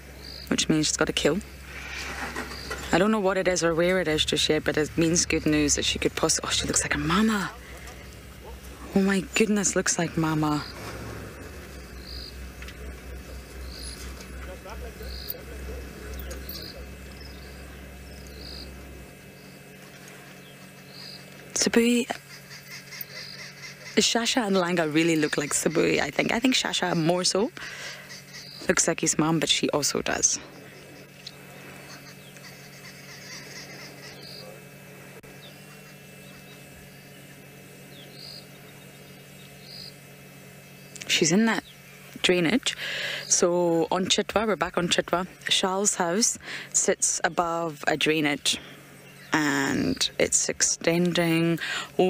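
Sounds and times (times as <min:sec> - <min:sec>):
insect chirping: 0:00.0 - 0:34.6, 0:35.2 - 0:43.9
crickets trilling: 0:00.0 - 0:52.0
low pulsing rumble: 0:00.0 - 0:52.0
steady low hum: 0:00.0 - 0:52.0.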